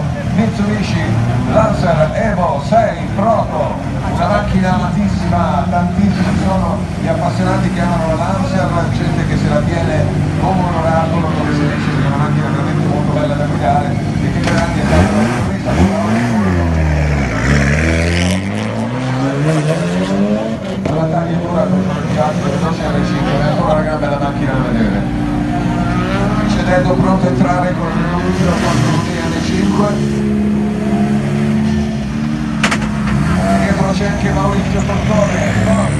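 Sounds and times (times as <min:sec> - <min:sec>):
voices: 0:00.0 - 0:17.7, 0:18.4 - 0:35.9
rally car revving past: 0:14.4 - 0:21.0.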